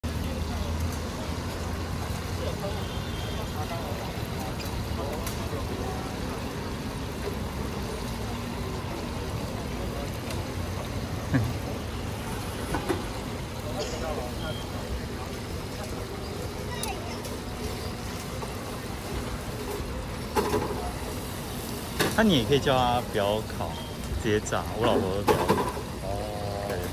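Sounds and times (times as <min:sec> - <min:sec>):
background chatter: 0:00.0 - 0:26.9
hot oil bubbling in deep fryer: 0:00.0 - 0:26.9
passing road traffic: 0:00.0 - 0:26.9.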